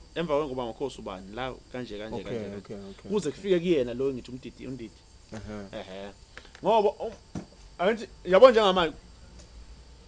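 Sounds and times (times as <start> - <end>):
man speaking: 0.2 - 7.2.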